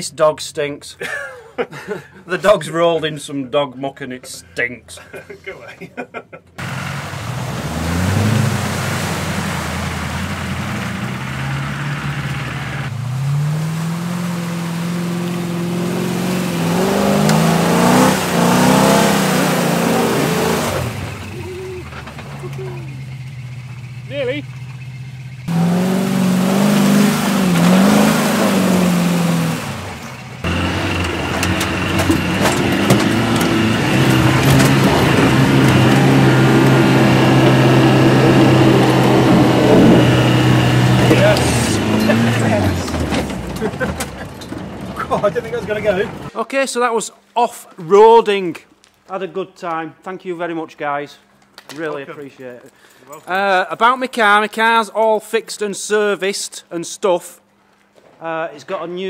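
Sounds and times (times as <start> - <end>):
off-road engines revving: 6.6 - 46.3.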